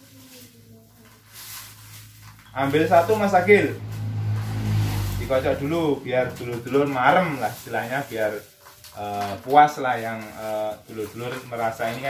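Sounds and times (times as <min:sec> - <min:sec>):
paper slips rustling: 0:00.0 - 0:12.0.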